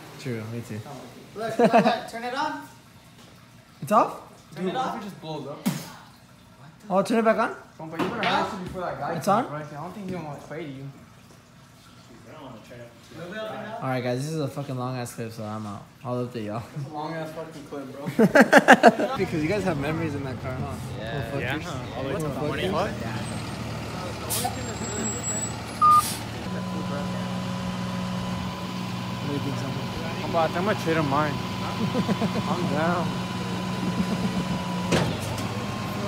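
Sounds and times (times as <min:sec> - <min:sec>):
truck engine running: 0:19.2 - 0:36.0
short loud beep: 0:25.8 - 0:26.2.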